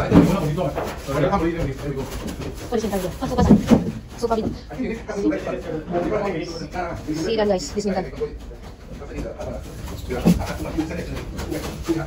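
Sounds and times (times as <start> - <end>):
person talking indistinctly: 5.8 - 9.3.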